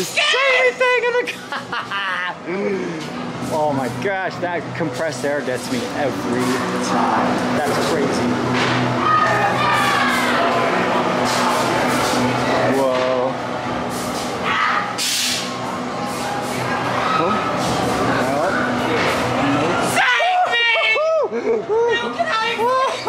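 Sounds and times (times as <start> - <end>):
low drone: 2.2 - 20.0
voices shouting: 8.8 - 12.3, 14.4 - 15.0, 19.7 - 21.3
short hissing bursts: 15.0 - 15.5.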